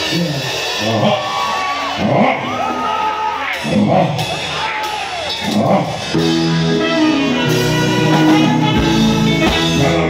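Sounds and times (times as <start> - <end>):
crowd cheering and whooping: 0.0 - 6.1
live band music: 0.0 - 10.0.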